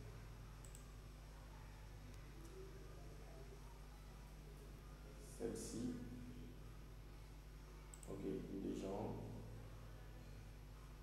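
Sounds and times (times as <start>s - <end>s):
computer mouse clicks: 0.6s - 0.9s, 7.9s - 8.2s.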